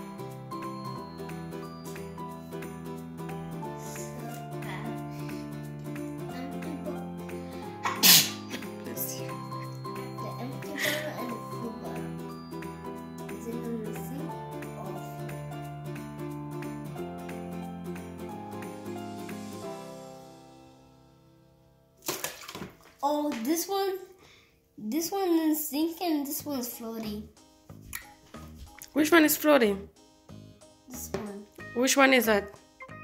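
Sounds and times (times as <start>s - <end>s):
background music: 0.0s - 24.1s, 24.8s - 33.0s
person sneezing: 7.8s - 8.7s
bottles splashing into water: 22.0s - 23.0s.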